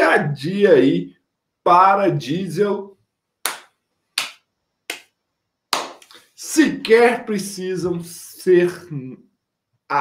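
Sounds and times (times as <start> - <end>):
hand claps: 3.4 - 6.2.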